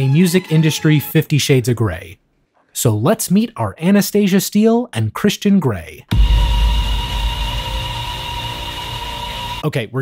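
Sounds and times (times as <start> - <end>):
deep bass boom: 6.1 - 9.6.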